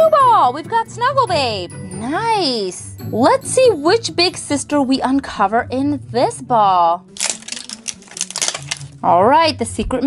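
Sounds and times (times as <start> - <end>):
plastic wrapping crinkling: 7.2 - 9.0.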